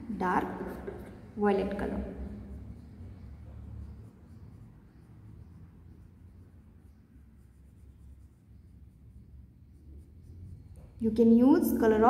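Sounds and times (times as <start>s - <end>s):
crayon scratching on paper: 0.2s - 11.0s.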